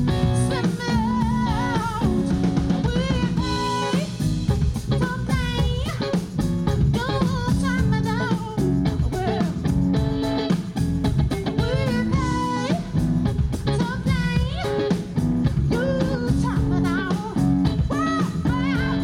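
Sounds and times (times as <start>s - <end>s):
woman singing lead vocal: 0.0s - 9.8s, 11.5s - 19.0s
bass guitar: 0.0s - 19.0s
drum kit steady beat: 0.0s - 19.0s
electric guitars: 0.0s - 19.0s.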